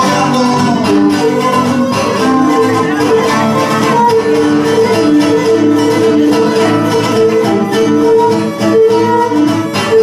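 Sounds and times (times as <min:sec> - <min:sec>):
bowed lyra melody: 0:00.0 - 0:10.0
plucked lute accompaniment: 0:00.0 - 0:10.0.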